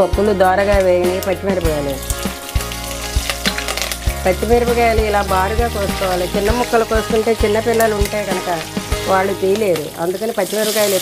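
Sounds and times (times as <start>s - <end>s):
music with low beat: 0.2s - 9.8s
food sizzling in hot oil: 0.7s - 11.0s
spatula stirring: 1.5s - 9.1s.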